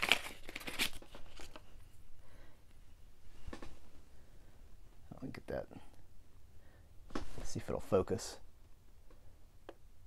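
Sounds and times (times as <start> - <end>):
packaging crinkling: 0.0 - 1.7
packaging rustling: 0.0 - 1.7.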